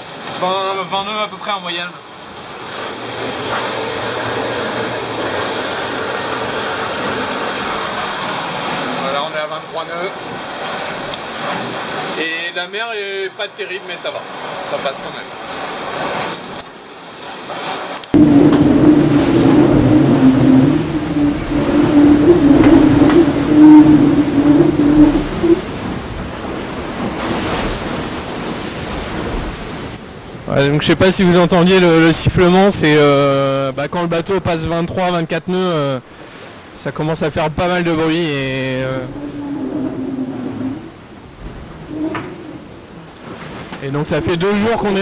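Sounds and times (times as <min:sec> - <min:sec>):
water rushing along hull: 0:00.0 - 0:45.0
wind noise: 0:18.1 - 0:33.3, 0:38.2 - 0:45.0
sailboat whistling tone: 0:18.2 - 0:26.1, 0:37.8 - 0:41.1, 0:41.8 - 0:43.0, 0:43.8 - 0:45.0
low steady hum: 0:18.2 - 0:26.6.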